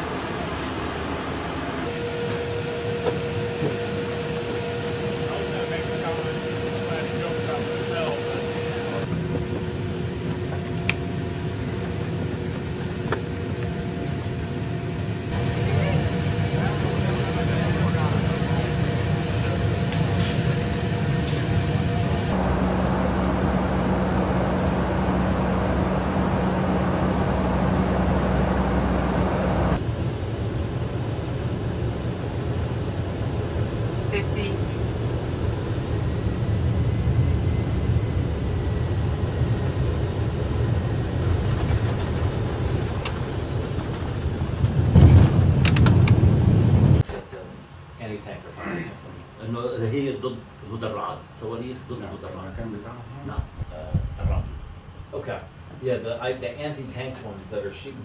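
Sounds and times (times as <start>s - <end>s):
aircraft engine drone: 0.0s - 47.0s.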